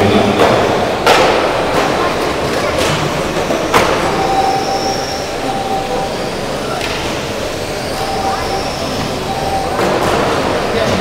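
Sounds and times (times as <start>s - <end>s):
radio-controlled cars racing: 0.0s - 11.0s
thin motor whine: 3.1s - 11.0s.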